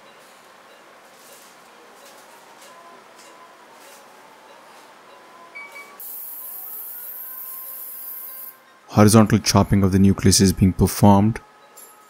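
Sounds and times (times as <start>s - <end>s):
short beeps: 5.6s - 6.0s
high-pitched hiss: 5.8s - 8.6s.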